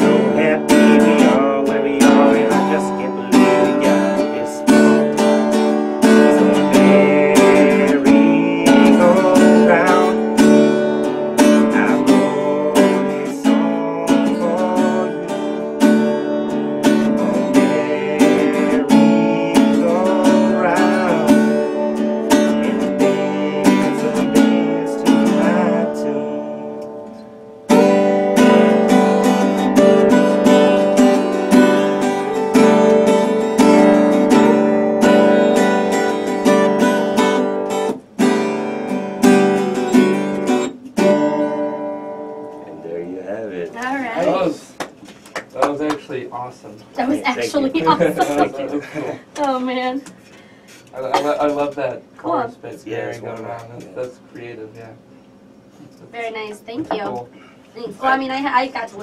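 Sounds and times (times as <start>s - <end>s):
man singing: 0.0s - 16.0s, 16.8s - 27.1s, 32.3s - 36.9s, 47.2s - 49.1s
acoustic guitar strumming: 0.0s - 54.3s, 55.0s - 59.0s.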